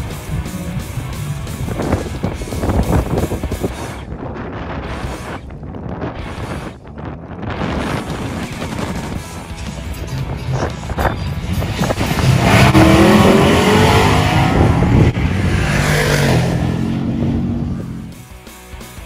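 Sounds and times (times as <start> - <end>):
race car engine accelerating: 11.4 - 18.2.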